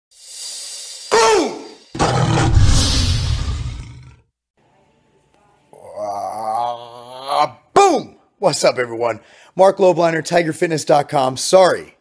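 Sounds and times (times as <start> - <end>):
rising whoosh: 2.0 - 4.1
loud hit with low rumble: 2.2 - 4.0.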